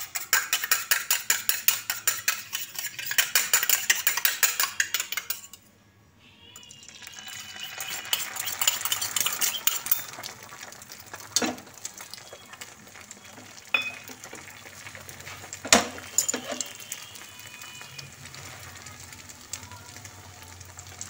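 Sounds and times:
eggs beaten in steel bowl: 0:00.0 - 0:05.6, 0:06.6 - 0:21.0.

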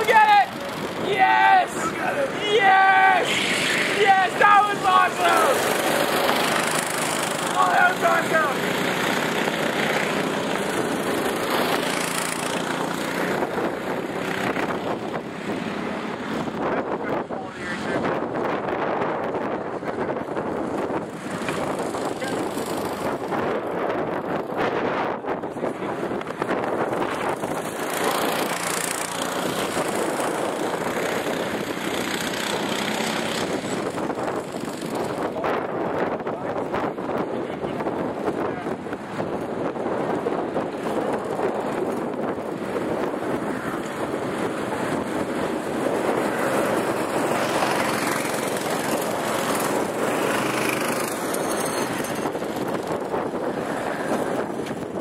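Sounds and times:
person speaking: 0:00.0 - 0:06.2, 0:07.4 - 0:08.7
go-kart engines running: 0:00.0 - 0:55.0
wind on microphone: 0:00.0 - 0:55.0.

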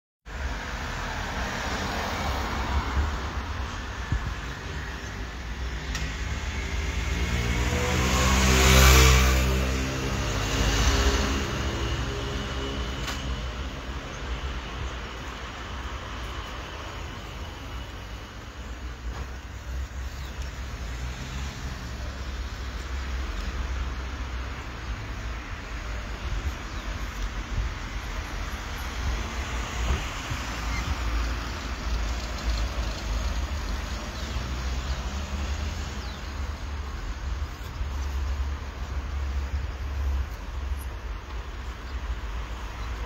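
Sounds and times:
low traffic rumble: 0:00.2 - 0:43.0.

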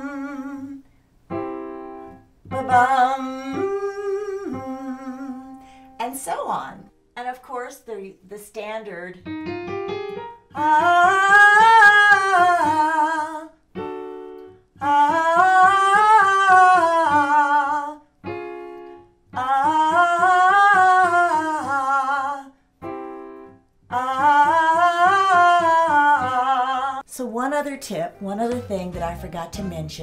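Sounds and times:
woman singing vocal scale: 0:00.0 - 0:00.9, 0:02.5 - 0:06.9, 0:10.5 - 0:13.6, 0:14.8 - 0:18.1, 0:19.3 - 0:22.6, 0:23.9 - 0:30.0
keyboard chord: 0:09.2 - 0:11.0.

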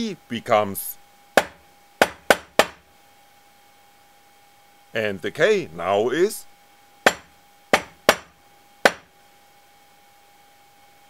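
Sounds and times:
knocking by hand: 0:01.4 - 0:02.8, 0:07.1 - 0:09.1.

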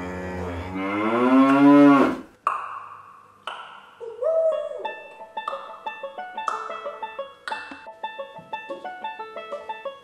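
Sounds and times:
cattle mooing: 0:00.0 - 0:02.3.

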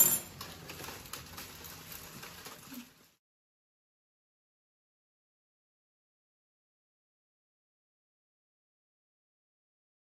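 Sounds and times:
kitchen utensils clinking: 0:00.0 - 0:02.8.

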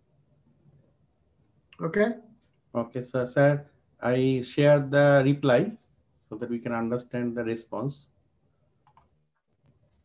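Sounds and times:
faint computer mouse clicks: 0:08.8 - 0:10.0.

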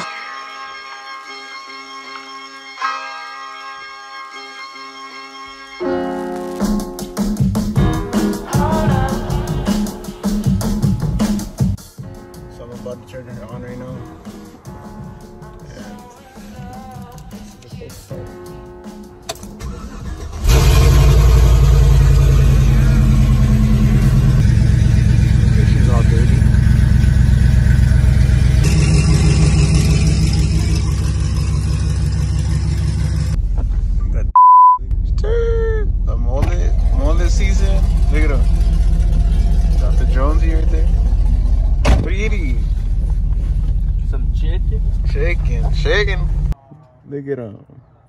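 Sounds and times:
vehicle engine starting and idling: 0:19.3 - 0:34.3, 0:34.9 - 0:46.6
short high beep: 0:34.4 - 0:34.8.

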